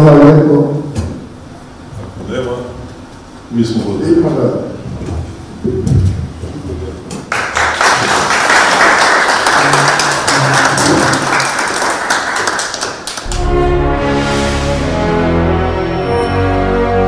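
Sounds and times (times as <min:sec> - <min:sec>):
audience applauding: 0:07.3 - 0:13.7.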